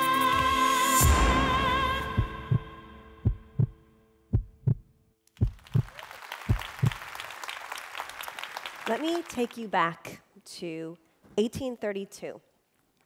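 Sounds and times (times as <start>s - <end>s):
heartbeat thumps: 2.1s - 5.9s, 6.5s - 7.0s
audience applause: 5.4s - 9.6s.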